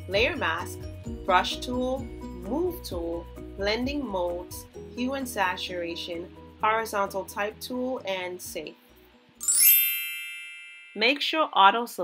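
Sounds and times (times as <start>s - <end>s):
bell-like chime: 9.4s - 11.2s.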